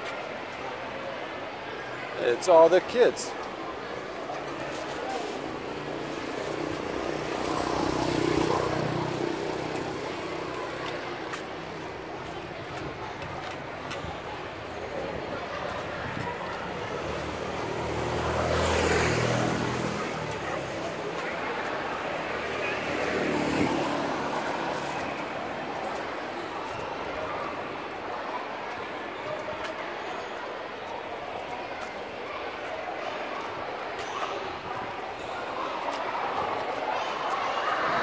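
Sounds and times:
traffic noise: 0.0s - 38.0s
vehicle engine passing by: 5.0s - 11.4s, 16.7s - 26.2s.

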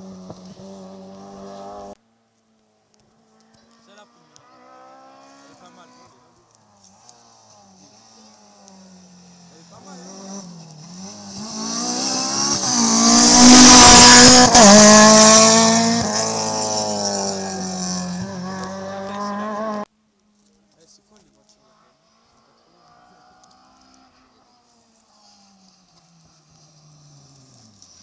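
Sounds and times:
rally car engine passing by: 0.0s - 2.0s, 3.4s - 19.9s, 21.6s - 28.0s.

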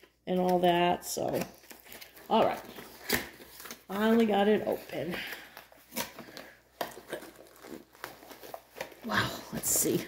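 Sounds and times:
packaging rustles and clicks: 0.0s - 10.0s.

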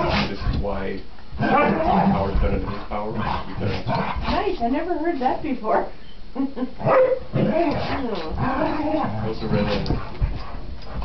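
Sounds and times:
people talking: 0.0s - 6.7s, 7.6s - 10.0s
dogs vocalizing while playing: 1.3s - 5.4s, 6.8s - 11.0s.

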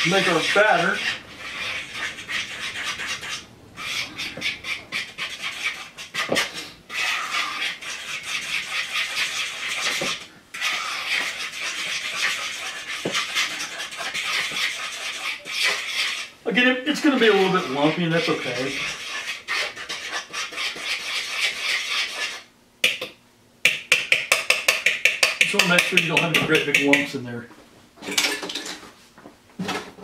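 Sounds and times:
batter stirred in mixing bowl: 0.0s - 22.5s, 23.8s - 27.2s.

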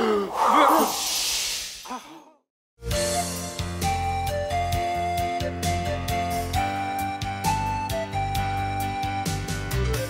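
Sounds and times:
long breathy sigh: 0.0s - 2.4s
music: 2.8s - 10.0s.

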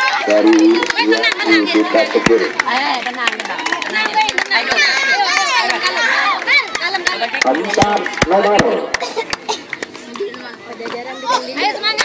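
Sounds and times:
boys chattering and calling out: 0.0s - 3.2s, 3.8s - 12.0s.

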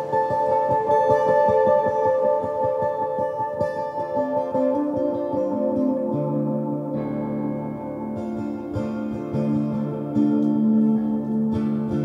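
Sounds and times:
ambient electric guitar music: 0.0s - 12.0s.

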